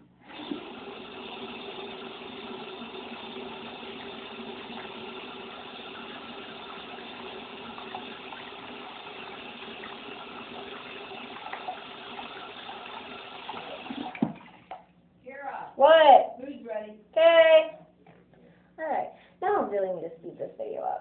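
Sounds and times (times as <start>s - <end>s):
tap water running: 0.2s - 14.9s.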